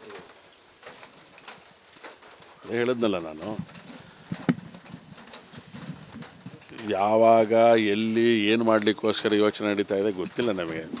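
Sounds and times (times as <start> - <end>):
faint ticks: 0.0 - 11.0
low background noise: 0.0 - 11.0.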